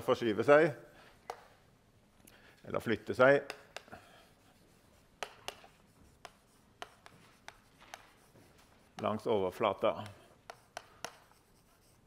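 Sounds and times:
chalk writing on a blackboard: 1.1 - 1.6, 3.1 - 12.0.

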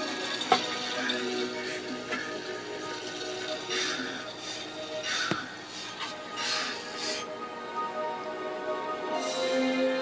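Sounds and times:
television soundtrack music: 0.0 - 10.0.

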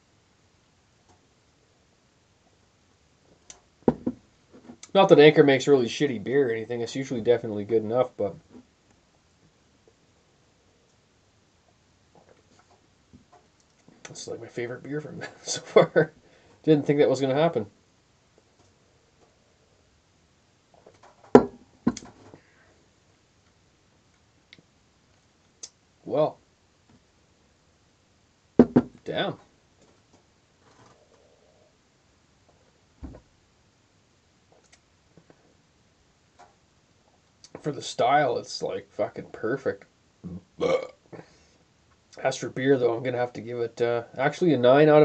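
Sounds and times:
drinking glass knocking on surface: 3.9 - 4.2, 21.4 - 22.0, 28.6 - 28.9
man burping: 40.2 - 41.3.

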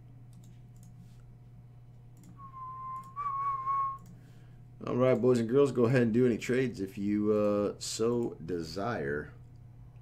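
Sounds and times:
low steady hum: 0.0 - 10.0
faint clicks: 0.3 - 1.3, 2.1 - 3.2, 3.9 - 4.2
person whistling held note: 2.4 - 4.1.

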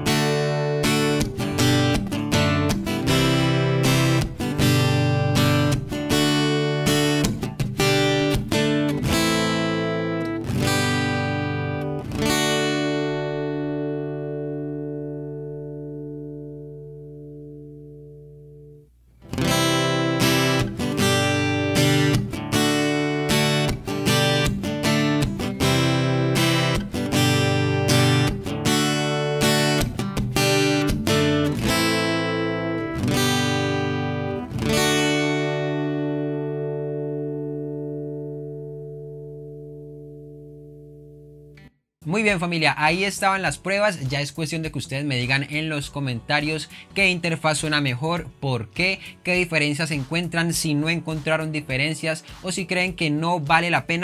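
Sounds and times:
acoustic guitar strumming chords: 0.0 - 54.0.

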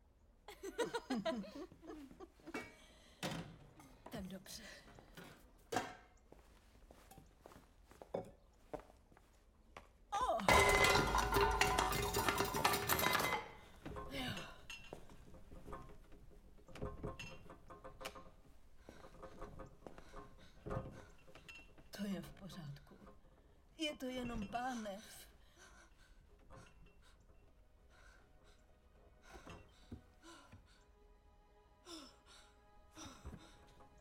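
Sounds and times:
kitchenware clinking: 10.5 - 15.8
metal pots and pans clattering: 10.5 - 21.8.

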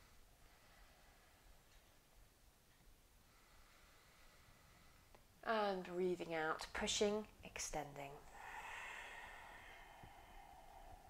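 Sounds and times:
woman breathing out slowly: 8.2 - 11.0.

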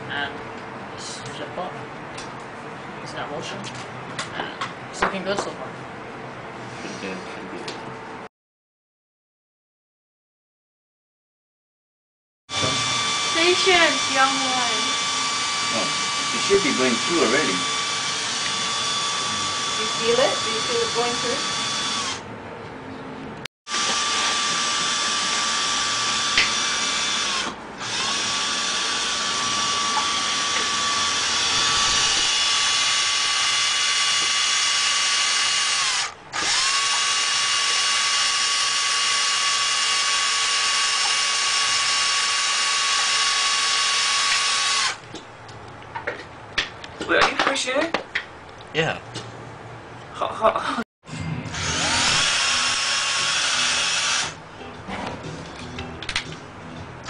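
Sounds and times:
electric drill boring wood: 12.5 - 22.2, 23.7 - 45.0, 51.5 - 54.4.

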